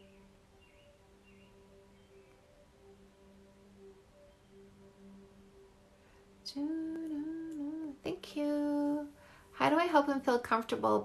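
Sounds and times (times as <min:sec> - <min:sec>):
woman humming: 0:06.5 - 0:09.1.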